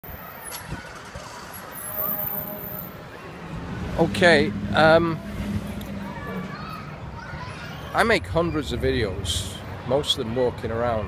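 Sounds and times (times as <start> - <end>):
cars driving on road: 0.0 - 11.0
faint voices: 0.1 - 11.0
vehicle passing by: 1.0 - 9.9.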